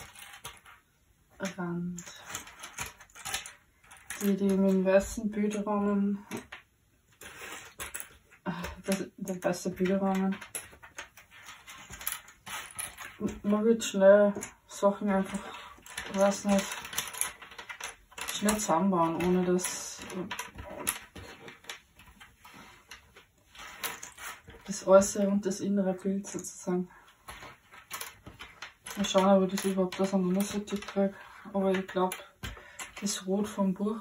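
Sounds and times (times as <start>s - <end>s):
puzzle pieces clicking and rattling: 0.0s - 0.8s, 1.4s - 5.7s, 7.2s - 13.5s, 14.2s - 25.2s, 27.2s - 33.3s.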